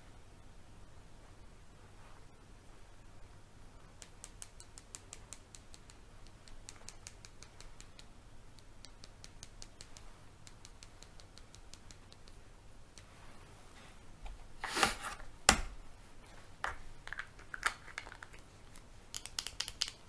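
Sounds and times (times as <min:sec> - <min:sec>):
crisp high clicks: 0:04.0 - 0:13.1, 0:17.5 - 0:20.0.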